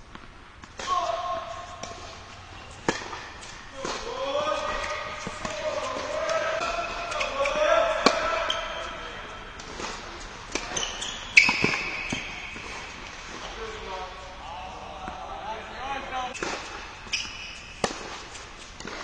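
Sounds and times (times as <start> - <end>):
tennis ball bouncing: 0.0 - 14.2, 16.4 - 19.0
rackets striking tennis ball: 0.0 - 15.3, 16.3 - 19.0.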